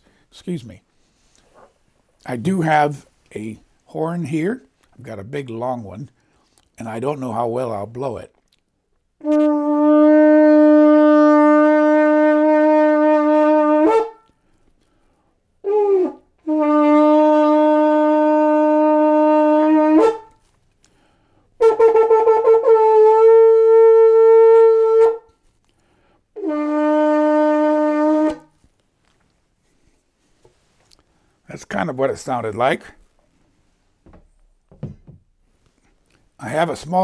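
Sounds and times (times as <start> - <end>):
shofar blasts: 9.2 - 14.3, 15.6 - 20.4, 21.6 - 25.4, 26.4 - 28.6.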